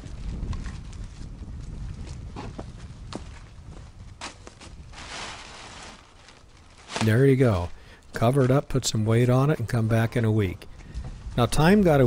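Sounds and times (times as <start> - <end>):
tarp rustling: 0.0 - 8.6.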